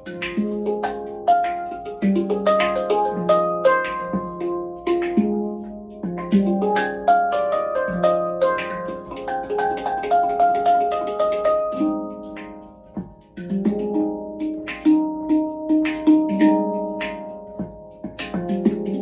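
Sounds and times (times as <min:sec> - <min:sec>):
handpan melody: 0:00.0 - 0:19.0
light percussive taps: 0:00.0 - 0:19.0.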